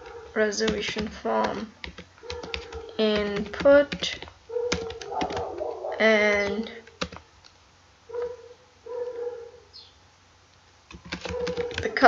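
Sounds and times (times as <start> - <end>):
dog whimpering: 4.5 - 6.1, 8.1 - 9.7
keyboard click: 10.9 - 11.9.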